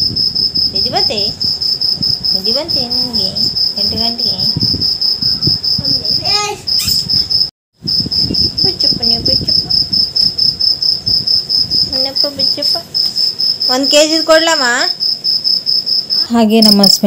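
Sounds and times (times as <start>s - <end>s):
insect chirping: 0.0s - 17.0s.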